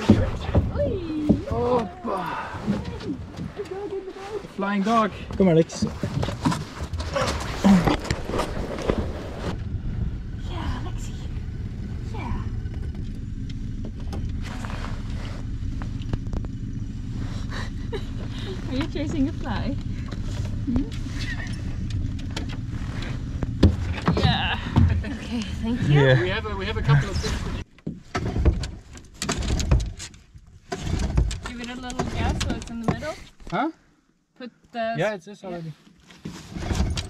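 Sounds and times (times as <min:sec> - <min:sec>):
outboard motor idling: 0:06.6 - 0:27.7.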